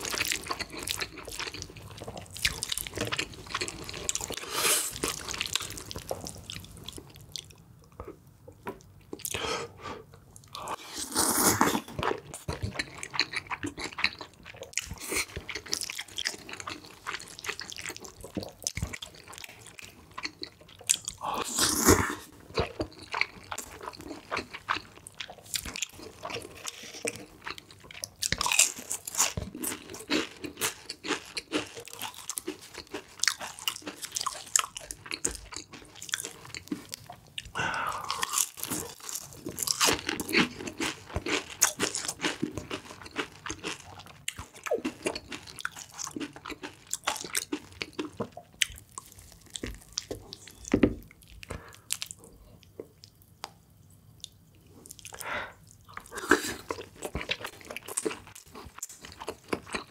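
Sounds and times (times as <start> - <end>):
crunching and chewing: 0.0 - 9.4, 10.4 - 59.9.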